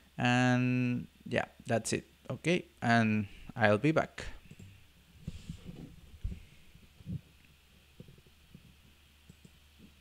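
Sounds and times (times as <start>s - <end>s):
quiet steady hum: 0.0s - 10.0s.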